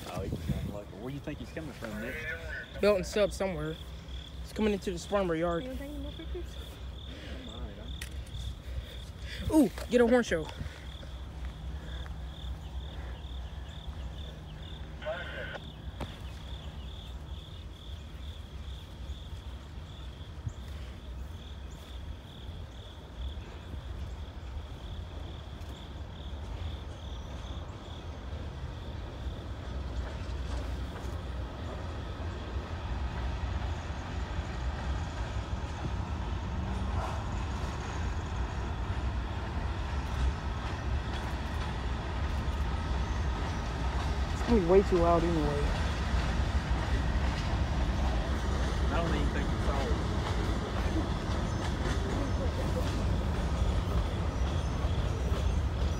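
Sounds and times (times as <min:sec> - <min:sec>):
diesel locomotive rumble: 0:00.0 - 0:55.9
insects chirping: 0:00.0 - 0:55.9.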